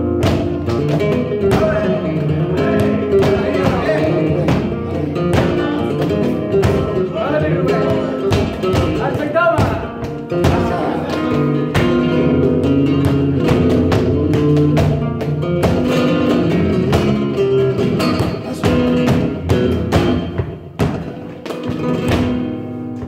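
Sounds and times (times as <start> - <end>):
flamenco guitar playing: 0.0 - 23.0
rhythmic hand clapping: 0.2 - 23.0.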